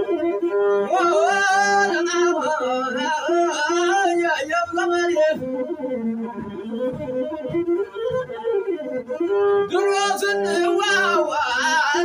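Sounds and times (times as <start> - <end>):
bowed one-string fiddle: 0.0 - 12.0
man singing wavering melody: 0.9 - 5.4, 9.7 - 12.0.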